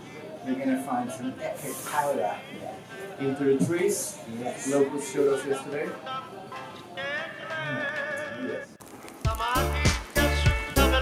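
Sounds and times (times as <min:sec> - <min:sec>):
music with heavy beat and bass: 0:09.3 - 0:11.0.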